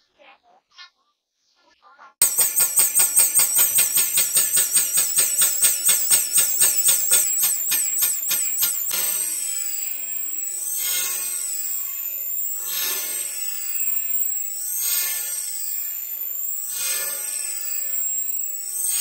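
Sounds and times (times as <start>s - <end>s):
steam engine exhaust chuffing: 2.2s - 9.6s.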